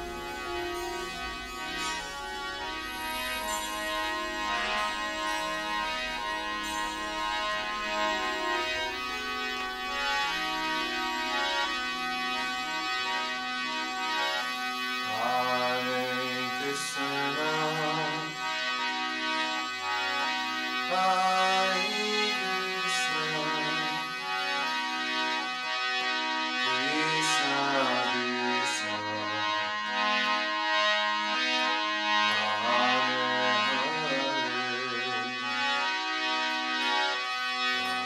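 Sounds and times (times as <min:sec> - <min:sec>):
devotional chanting music: 0:00.0 - 0:38.0
gliding melody: 0:00.0 - 0:38.0
reed organ chords: 0:00.0 - 0:38.0.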